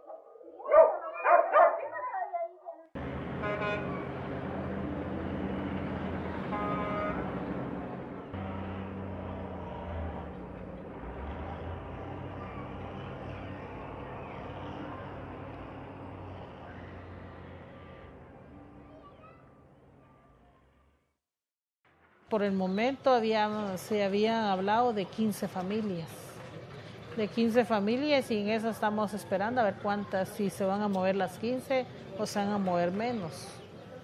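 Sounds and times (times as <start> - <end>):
truck engine running: 3.0 - 20.1, 23.6 - 30.1.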